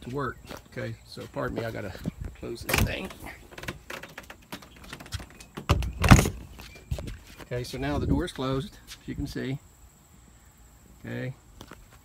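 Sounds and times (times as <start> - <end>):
hatch closing thud: 2.6 - 6.5.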